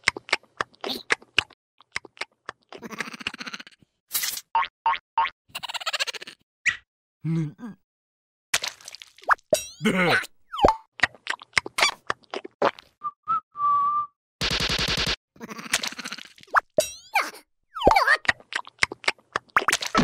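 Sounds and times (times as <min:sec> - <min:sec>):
squeaky cartoon character vocalizations: 0:05.5 - 0:06.4, 0:17.0 - 0:18.4
cartoon plops and boings: 0:10.5 - 0:10.9, 0:17.8 - 0:18.3.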